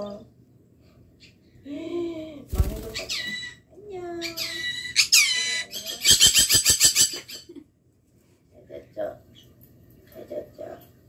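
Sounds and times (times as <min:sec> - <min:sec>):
parrot mimicking speech: 0:02.8 - 0:06.6
parrot chattering: 0:02.9 - 0:07.5.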